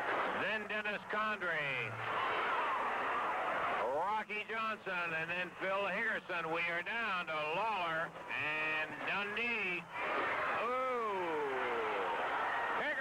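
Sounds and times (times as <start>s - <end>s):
crowd noise: 0.0s - 13.0s.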